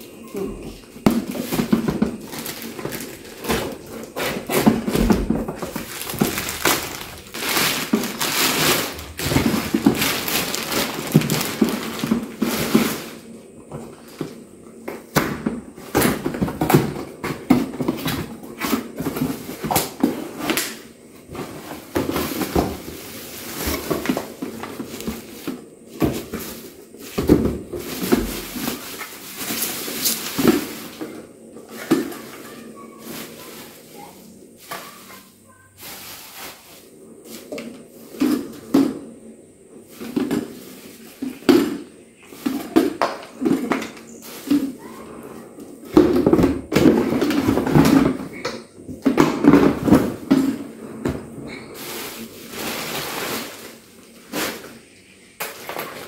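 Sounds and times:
plastic bag crinkling: 1.3s - 13.2s.

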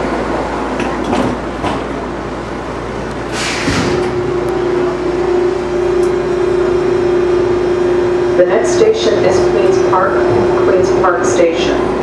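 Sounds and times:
subway car rumbling: 0.0s - 12.0s
subway car air hiss: 3.2s - 4.1s
steady electric hum: 3.9s - 12.0s.

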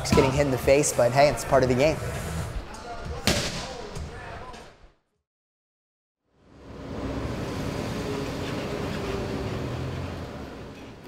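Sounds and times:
traffic rumble: 6.4s - 11.0s.

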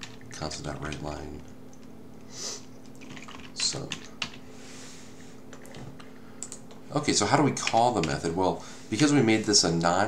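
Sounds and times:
low background hum: 0.0s - 10.0s
keyboard and mouse clicks: 2.8s - 4.4s, 5.5s - 6.8s, 7.5s - 8.2s.

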